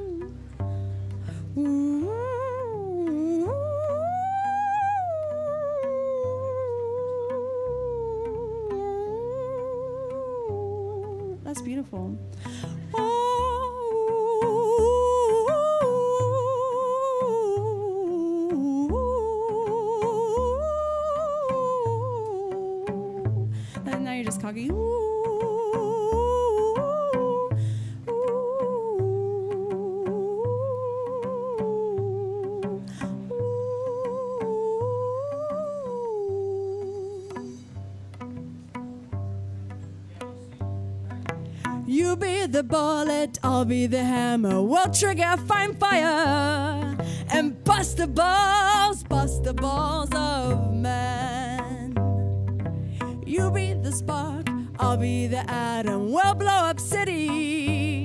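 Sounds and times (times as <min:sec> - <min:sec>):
woman humming a melody: 0:00.0 - 0:00.4, 0:01.4 - 0:12.2, 0:12.8 - 0:37.8, 0:41.8 - 0:52.3, 0:53.1 - 0:58.0
low cello notes: 0:00.0 - 0:58.0.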